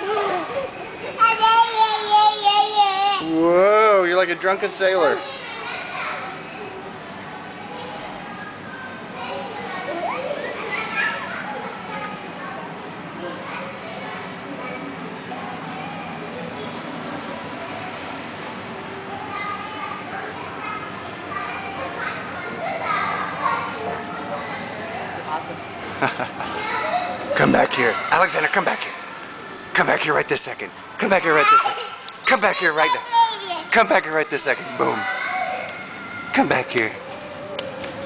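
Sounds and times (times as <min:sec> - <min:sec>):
children playing: 0:00.0 - 0:38.0
people talking: 0:27.3 - 0:28.9, 0:36.4 - 0:38.0.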